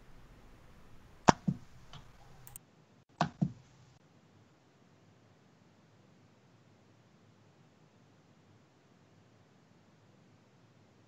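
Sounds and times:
faint background hiss: 0.0 - 11.0
computer mouse clicks: 0.1 - 2.6.

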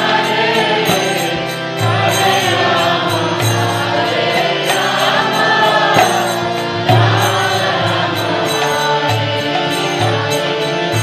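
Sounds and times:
devotional chant singing: 0.0 - 11.0
harmonium chords: 0.0 - 11.0.

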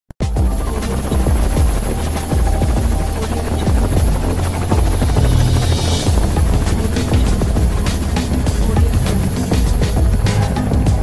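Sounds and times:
helicopter rotor blades beating: 0.2 - 11.0
music: 0.2 - 11.0.

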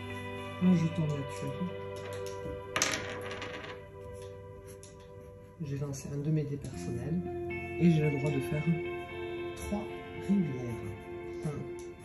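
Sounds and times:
die clattering on wooden table: 2.0 - 3.8.

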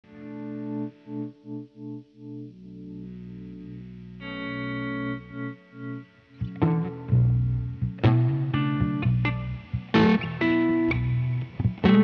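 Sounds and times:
distorted electric guitar chords: 0.0 - 12.0.

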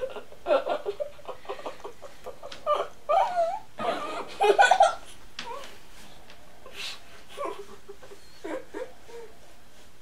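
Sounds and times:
girl giggling muffled: 0.0 - 5.8, 6.7 - 9.4.

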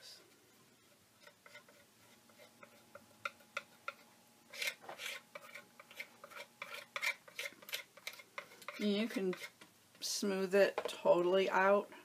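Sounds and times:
tool scraping and tapping paper: 1.2 - 9.7.

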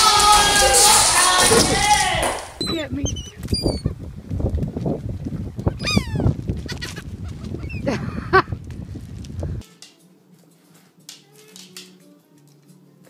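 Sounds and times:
steady low rumble: 0.2 - 9.6
seagulls calling: 5.7 - 8.0.

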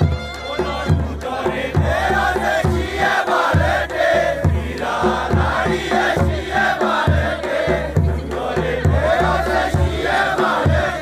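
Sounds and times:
steady low drum beat: 0.0 - 11.0
voices singing folk melody: 0.0 - 11.0.

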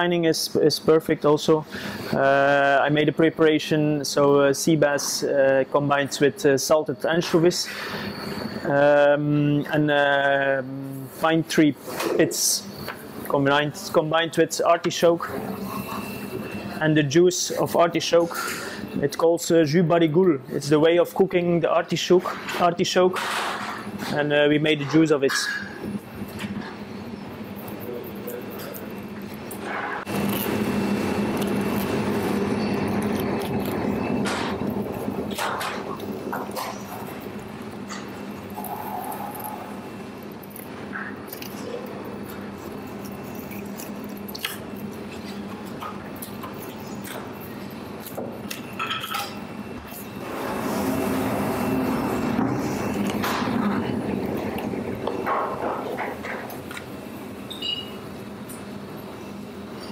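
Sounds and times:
kitchen hum: 0.7 - 59.9.

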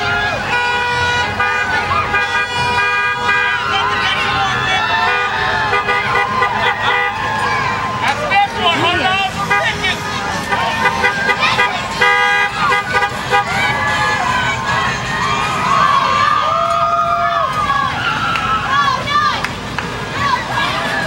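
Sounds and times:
car horns honking: 0.0 - 7.5, 8.4 - 15.8
people shouting and cheering: 0.0 - 21.0
vehicles driving past: 0.0 - 21.0.

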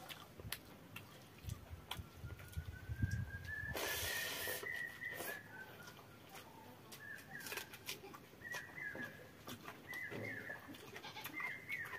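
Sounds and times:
thin rising whistle-like tone: 2.5 - 5.9
wet hissing squelch: 3.6 - 5.5.

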